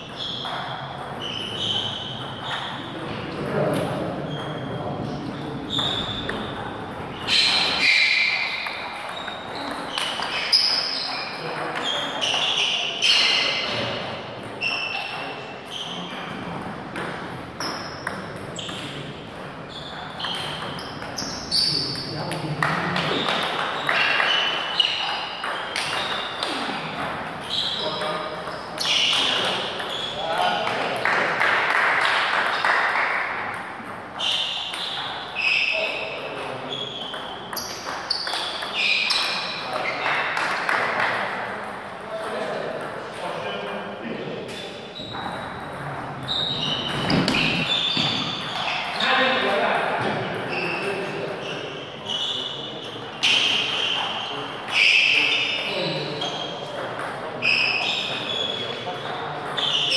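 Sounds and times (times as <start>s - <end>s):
table tennis ball pinging: 0.0s - 2.9s, 3.6s - 13.8s, 14.4s - 35.7s, 36.4s - 41.2s, 44.5s - 49.1s, 59.0s - 59.9s.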